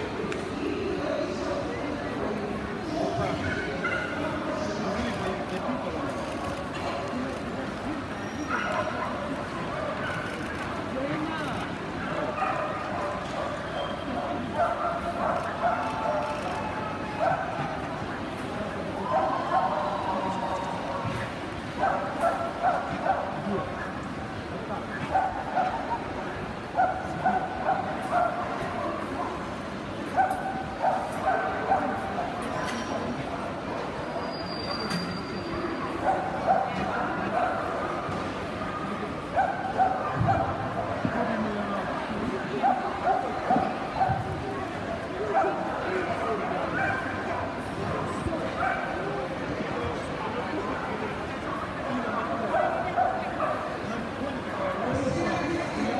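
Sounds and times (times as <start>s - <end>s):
crowd chatter in a hall: 0.0s - 55.9s.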